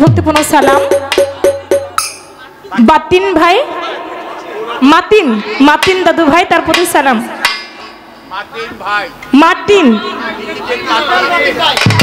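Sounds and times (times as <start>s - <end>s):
woman speaking into microphone: 0.0s - 1.0s, 2.8s - 3.8s, 4.8s - 7.4s, 9.3s - 10.1s.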